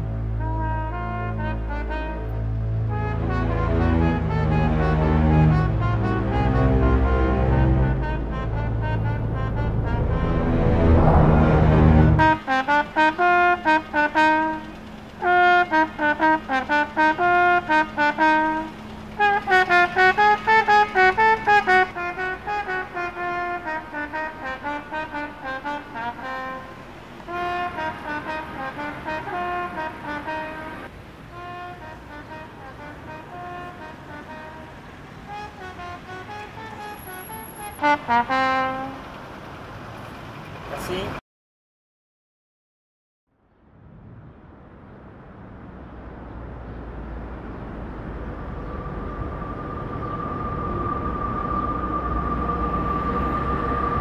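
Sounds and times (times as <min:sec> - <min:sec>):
solo trumpet melody: 0:00.0 - 0:39.2.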